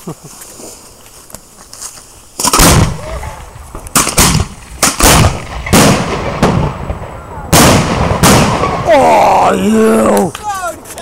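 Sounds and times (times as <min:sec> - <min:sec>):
firework launch bang: 0:02.4 - 0:08.9
sharp firework bangs: 0:02.4 - 0:09.0
big firework burst: 0:02.4 - 0:09.1.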